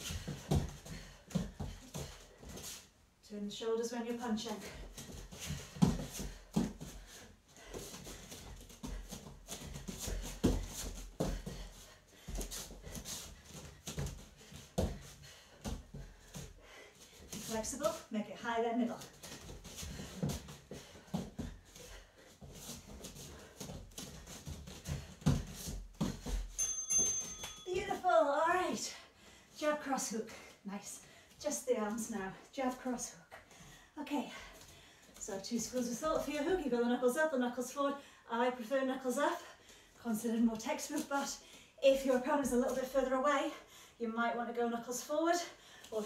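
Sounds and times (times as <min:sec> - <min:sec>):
bare feet on foam mats: 0:00.0 - 0:03.0, 0:03.8 - 0:37.9, 0:39.0 - 0:43.5.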